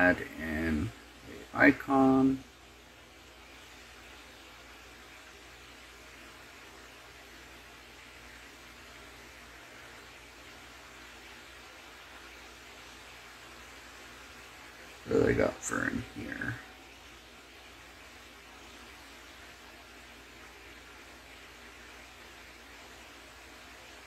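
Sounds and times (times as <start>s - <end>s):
faint microphone hiss: 0.0s - 24.0s.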